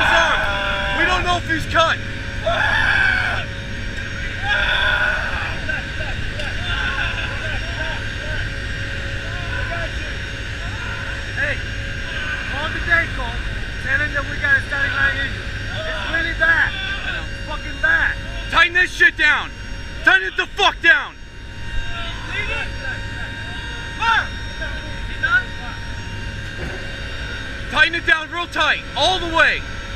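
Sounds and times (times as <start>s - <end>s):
people talking and shouting: 0.0s - 21.2s
turboprop engines droning: 0.0s - 29.9s.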